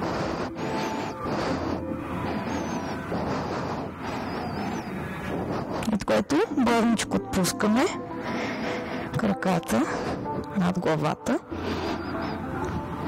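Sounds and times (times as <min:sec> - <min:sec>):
faint high wavering chirps: 0:00.0 - 0:08.1, 0:10.8 - 0:13.0
rushing wave-like noise: 0:00.0 - 0:09.1.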